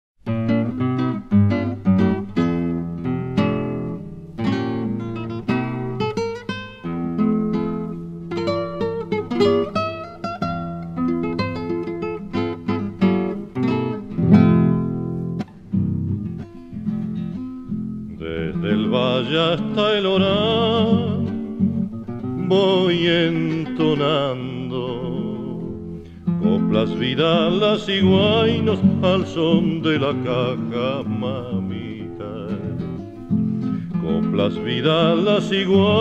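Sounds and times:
classical guitar playing: 0:00.2 - 0:36.0.

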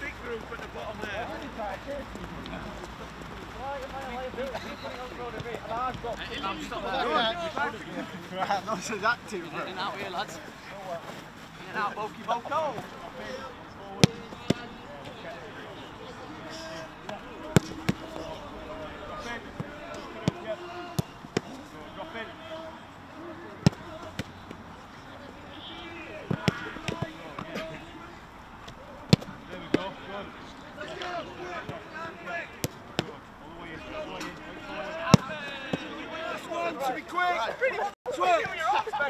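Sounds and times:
distant shouts and chatter: 0:00.0 - 0:39.0
football thuds: 0:13.8 - 0:22.4, 0:23.3 - 0:24.6, 0:25.5 - 0:27.9, 0:28.6 - 0:36.0.

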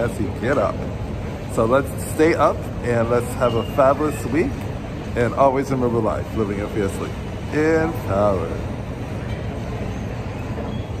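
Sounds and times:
low city rumble: 0:00.0 - 0:11.0.

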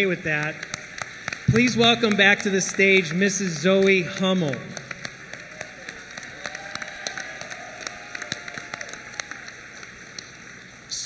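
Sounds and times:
audience applauding: 0:00.0 - 0:10.8.

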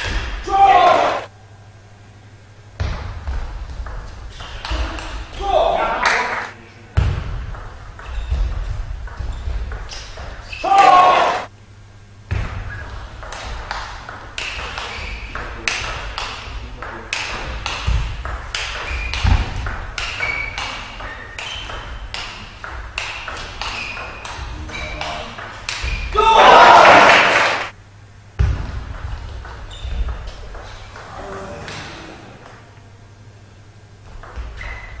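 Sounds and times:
crowd shouting and cheering: 0:00.4 - 0:01.3, 0:10.6 - 0:11.5, 0:26.1 - 0:27.7
person shouting: 0:00.4 - 0:01.3, 0:05.4 - 0:06.0, 0:10.6 - 0:11.5, 0:26.1 - 0:27.2.

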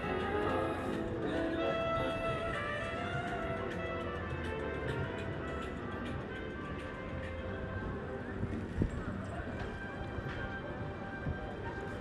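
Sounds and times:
passers-by talking: 0:00.0 - 0:03.8.

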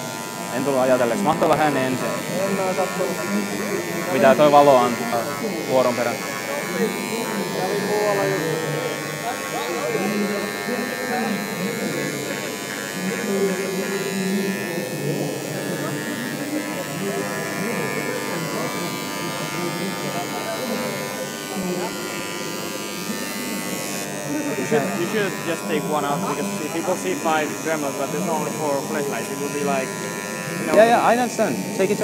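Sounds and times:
rotary tool engraving acrylic: 0:00.0 - 0:32.0.

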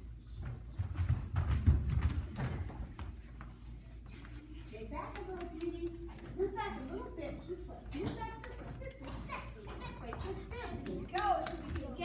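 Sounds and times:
young children chattering: 0:04.1 - 0:12.0.

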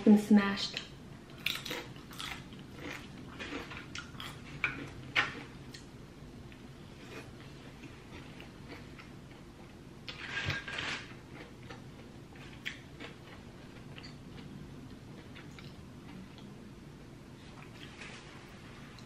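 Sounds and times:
chewing salad: 0:00.7 - 0:05.9, 0:06.5 - 0:16.5.

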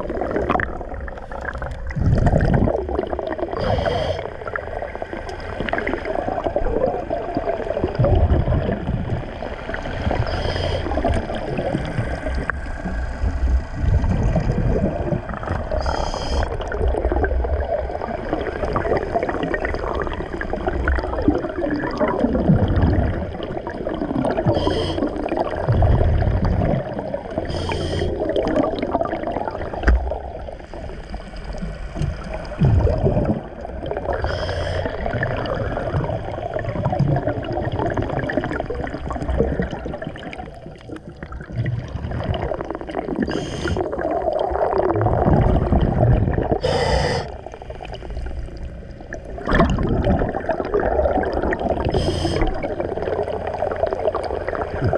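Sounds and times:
exhaled bubbles gurgling: 0:00.0 - 0:54.9
low underwater rumble: 0:00.0 - 0:54.9
diver breathing through regulator: 0:03.6 - 0:04.4, 0:10.2 - 0:11.1, 0:15.7 - 0:16.6, 0:24.5 - 0:25.2, 0:27.4 - 0:28.2, 0:34.1 - 0:35.0, 0:43.2 - 0:44.0, 0:46.6 - 0:47.5, 0:51.8 - 0:52.6.

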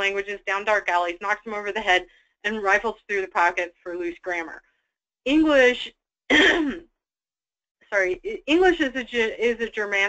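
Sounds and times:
woman clearing her throat: 0:06.3 - 0:06.9.

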